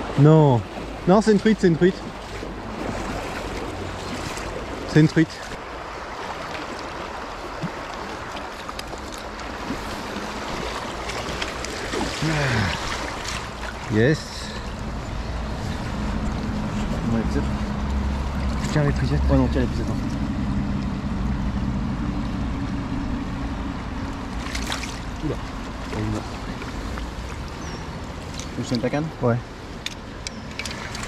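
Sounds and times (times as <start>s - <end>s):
river water rushing: 0.0s - 31.0s.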